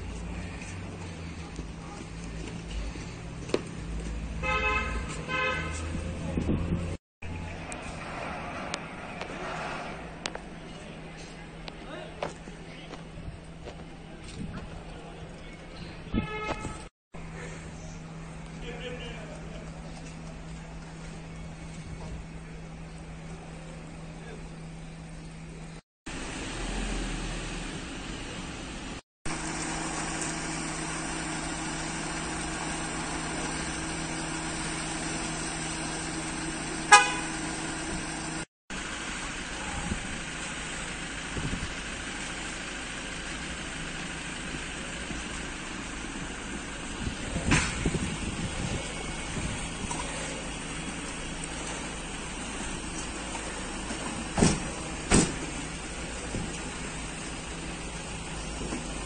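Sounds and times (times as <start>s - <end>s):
car horn toot: 4.4s - 5.9s, 16.1s - 16.9s, 36.8s - 37.6s.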